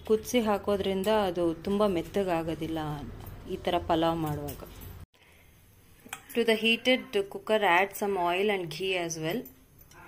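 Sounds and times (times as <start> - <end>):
woman speaking: 0.0 - 4.8, 6.3 - 9.5.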